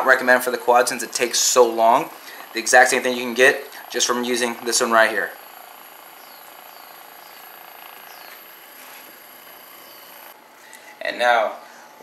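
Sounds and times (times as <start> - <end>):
massager motor buzz: 0.0 - 10.4.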